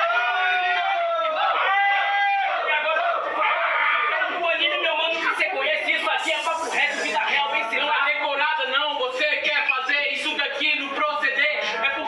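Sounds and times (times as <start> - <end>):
men shouting and whooping: 0.0 - 4.9.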